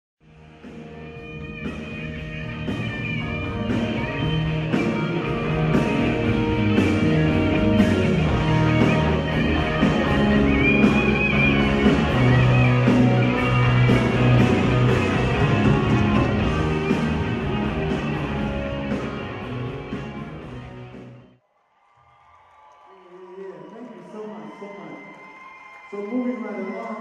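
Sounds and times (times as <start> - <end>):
bass: 0.2 - 21.4
electric guitar: 0.3 - 21.3.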